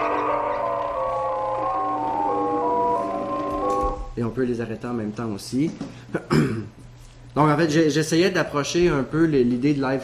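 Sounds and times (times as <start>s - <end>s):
sine-tone melody: 0.0s - 4.2s.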